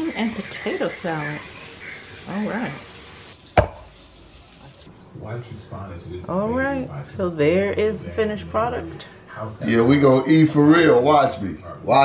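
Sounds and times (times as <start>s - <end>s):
sharp knock: 3.6s - 3.9s.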